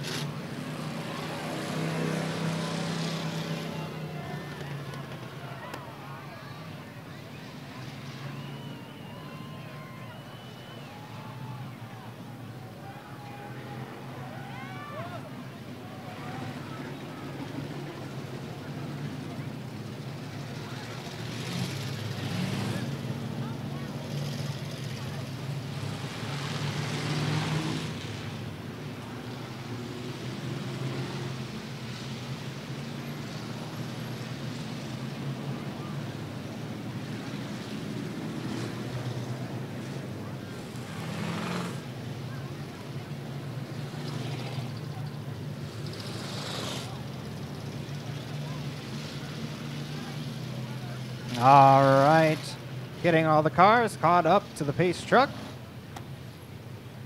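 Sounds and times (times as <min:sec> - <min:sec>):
race car engines droning: 0:00.0 - 0:57.0
voices in background: 0:01.0 - 0:27.4, 0:39.3 - 0:56.6.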